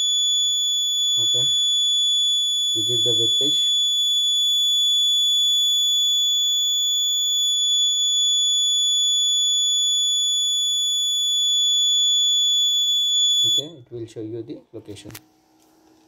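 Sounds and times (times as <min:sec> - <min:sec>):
high-pitched alarm buzzer tone: 0:00.0 - 0:13.8.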